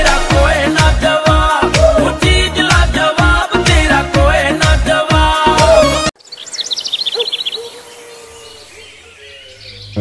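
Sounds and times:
songbird chirping: 6.1s - 10.0s.

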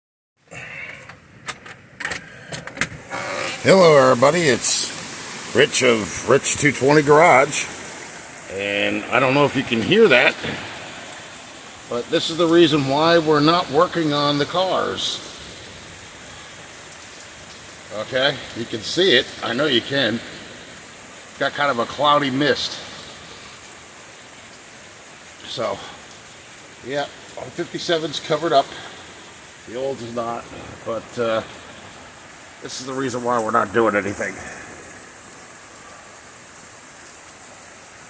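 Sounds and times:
steady rain falling: 0.4s - 38.0s.

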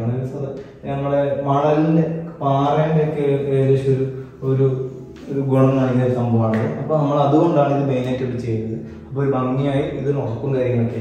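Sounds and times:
man talking sing-song: 0.0s - 11.0s.

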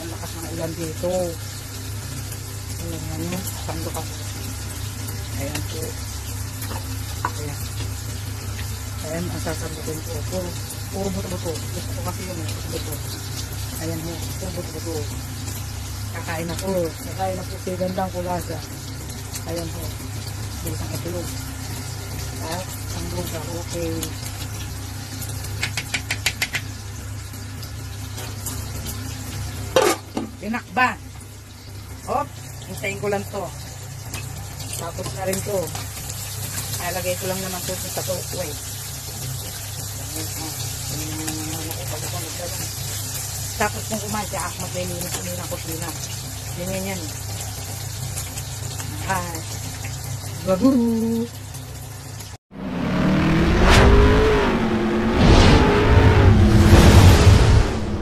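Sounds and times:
low rumble: 52.5s - 58.0s
whoosh: 52.5s - 58.0s.

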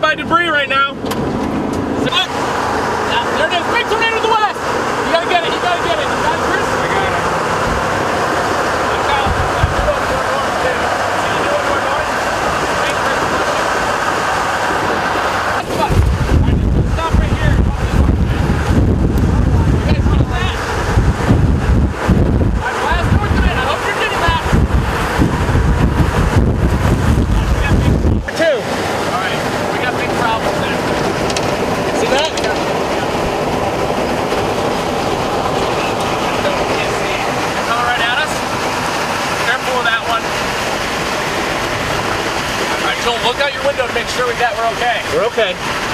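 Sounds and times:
wind buffeting microphone: 6.2s - 44.0s.

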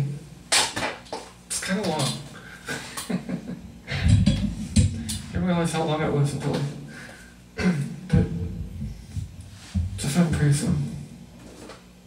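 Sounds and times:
microphone handling thumps: 3.9s - 5.4s, 8.1s - 10.6s.

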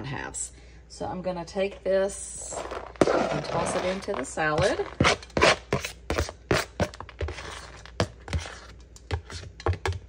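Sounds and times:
knife scraping cutting board: 2.4s - 9.5s.

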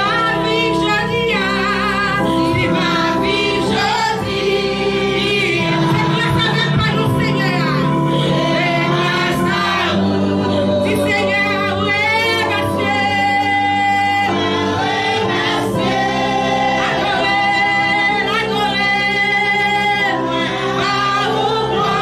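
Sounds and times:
woman singing into a microphone: 0.0s - 15.9s, 16.5s - 22.0s.

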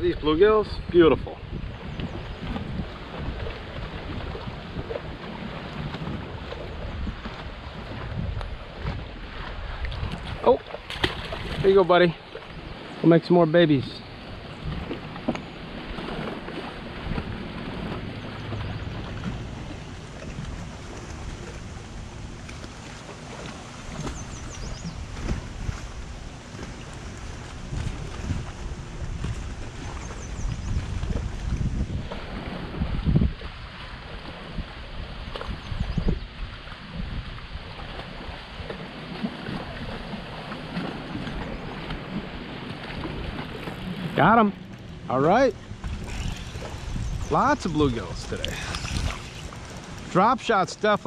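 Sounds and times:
wind buffeting microphone: 0.0s - 13.0s, 13.7s - 51.0s
water lapping against boat hull: 0.0s - 51.0s.

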